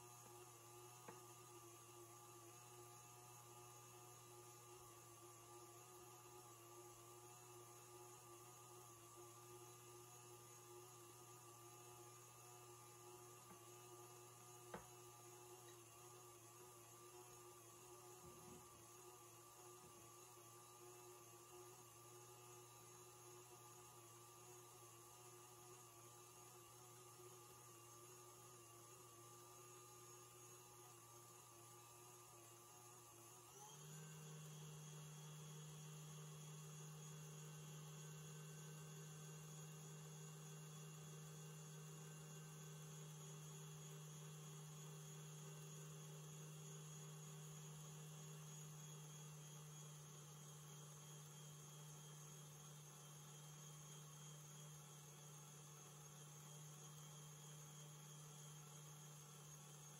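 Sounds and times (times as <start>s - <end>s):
stand mixer motor humming: 0.0s - 59.9s.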